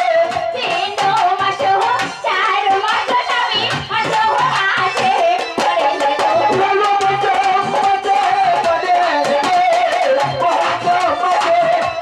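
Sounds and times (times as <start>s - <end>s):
hand drum and percussion: 0.0s - 12.0s
person singing folk song: 0.0s - 12.0s.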